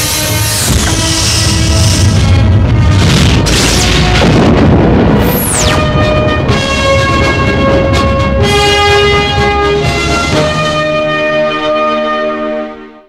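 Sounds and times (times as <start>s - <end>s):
deep rumbling boom: 0.7s - 9.6s
sharp falling whoosh: 3.0s - 6.1s
held orchestral tones: 5.6s - 12.8s.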